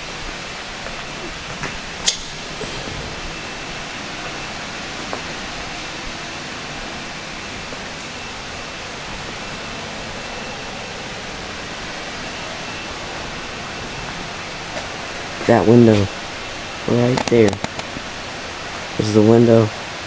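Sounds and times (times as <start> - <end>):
faint high whine: 0.0 - 20.0
steady rushing noise: 0.0 - 20.0.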